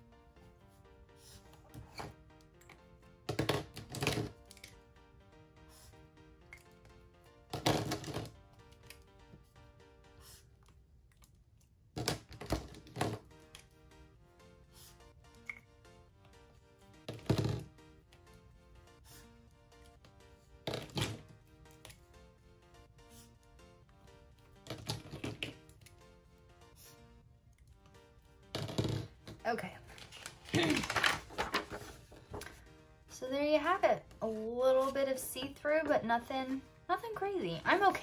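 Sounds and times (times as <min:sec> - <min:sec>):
soft background music: 0:00.0 - 0:38.0.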